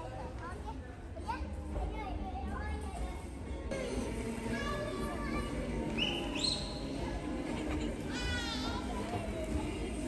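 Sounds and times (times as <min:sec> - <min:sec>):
children talking and calling out: 0:00.1 - 0:06.6, 0:07.8 - 0:10.0
background music: 0:03.7 - 0:10.0.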